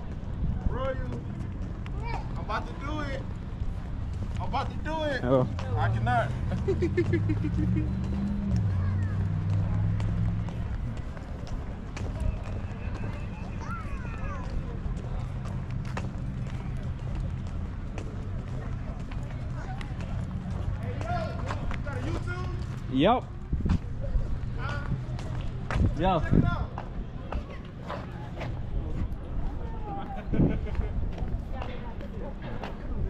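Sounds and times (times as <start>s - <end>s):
footsteps on stone paving: 0.0s - 33.0s
outdoor background noise: 0.0s - 33.0s.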